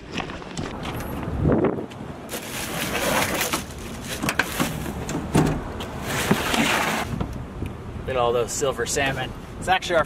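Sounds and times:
plastic bags of ice crunching: 2.3 - 4.7.

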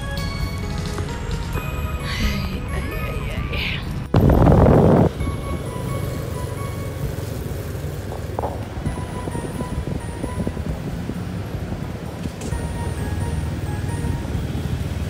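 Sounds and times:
background music: 0.0 - 15.0
outdoor background noise: 0.0 - 15.0
loud rush of noise: 4.1 - 15.0.

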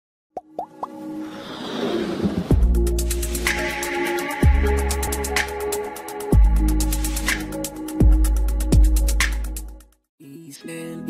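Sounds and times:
quick rising pops: 0.4 - 2.6
whoosh: 1.2 - 3.7.

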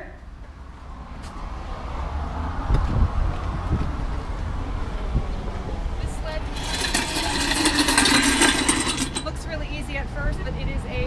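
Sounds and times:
road traffic passing: 0.3 - 9.4
wind rumbling on microphone: 2.5 - 6.4.

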